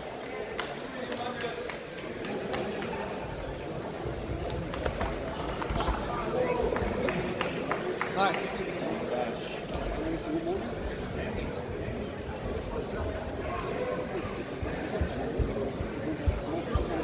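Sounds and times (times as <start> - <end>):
crowd chatter and calls: 0.0 - 17.0.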